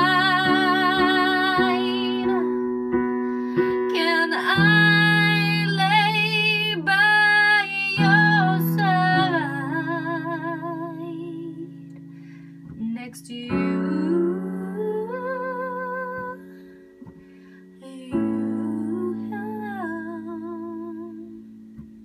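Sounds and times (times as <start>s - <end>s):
woman singing with vibrato: 0.0s - 2.7s, 3.6s - 11.8s, 12.8s - 16.5s, 17.8s - 21.4s
digital piano chords: 0.0s - 22.0s.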